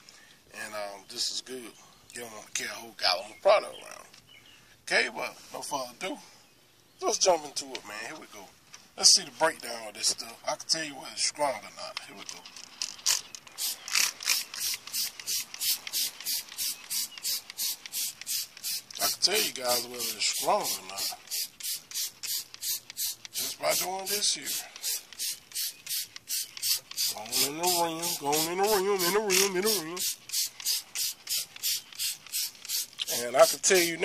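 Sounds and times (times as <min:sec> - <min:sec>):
spray bottle spraying: 0:13.6 - 0:34.0.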